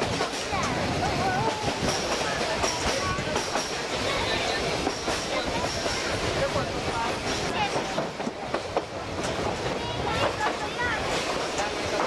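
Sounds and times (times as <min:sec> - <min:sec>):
train wheels rumbling on rail: 0:00.0 - 0:12.0.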